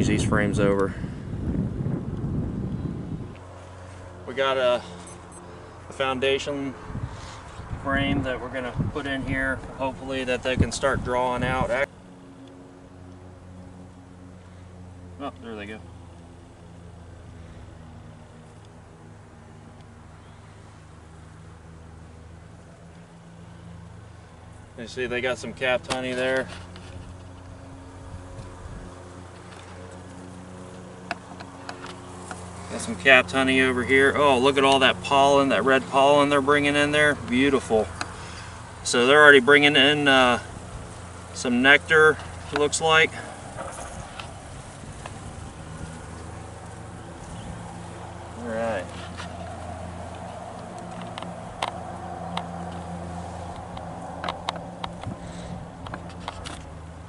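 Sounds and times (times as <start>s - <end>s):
honey bees humming: 0.0s - 57.0s.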